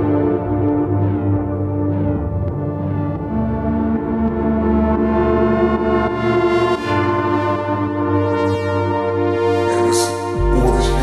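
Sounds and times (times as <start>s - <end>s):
synthesizer chords: 0.0s - 11.0s
deep bass line: 9.8s - 11.0s.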